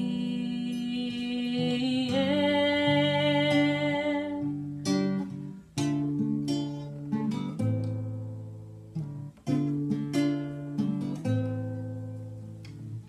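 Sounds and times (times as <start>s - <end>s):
acoustic guitar strumming chords: 0.0s - 13.0s.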